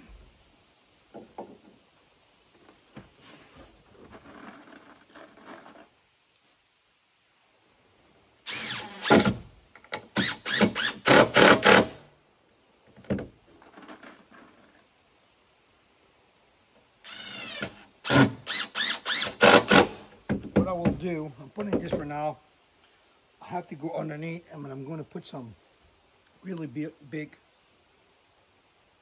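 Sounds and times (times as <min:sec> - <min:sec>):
cordless drill driving a screw: 0:08.4 - 0:09.4, 0:10.2 - 0:12.0, 0:17.0 - 0:20.0.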